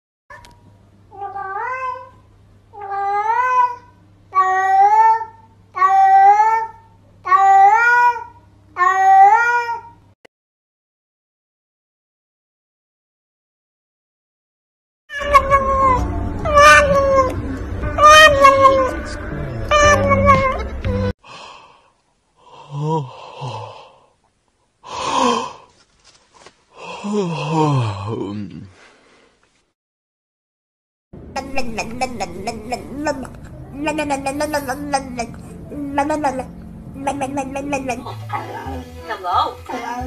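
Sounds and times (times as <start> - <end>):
cat meowing: 15.1 - 19.0, 19.7 - 20.7.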